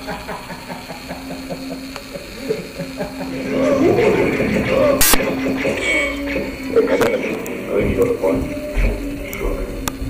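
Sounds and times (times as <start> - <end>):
laser phaser pulsing buzz: 0.0 - 10.0.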